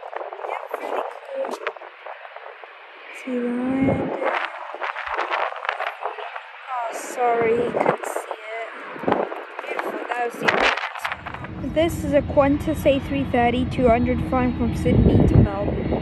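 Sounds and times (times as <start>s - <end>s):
voices talking: 0.0s - 1.7s, 3.1s - 8.9s, 9.6s - 15.8s
steady background noise: 0.0s - 16.0s.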